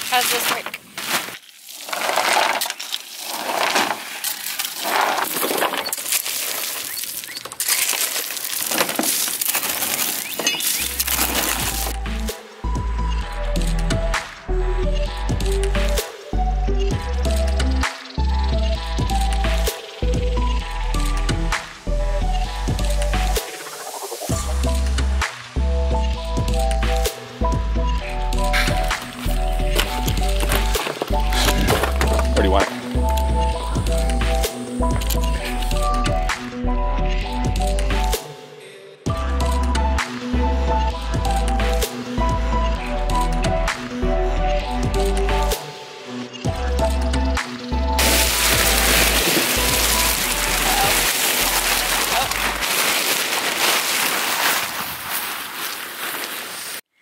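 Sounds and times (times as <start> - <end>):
shovel scraping crushed rock: 0.0 - 11.9, 28.6 - 32.4, 48.0 - 56.9
stones clinking and rattling: 0.1 - 11.9, 48.0 - 53.3
music with heavy bass beat: 11.1 - 23.5, 24.2 - 38.3, 39.1 - 45.6, 46.5 - 52.6.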